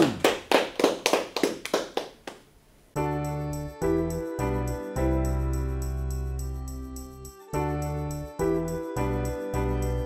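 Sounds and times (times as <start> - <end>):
small audience applauding: 0.0 - 2.5.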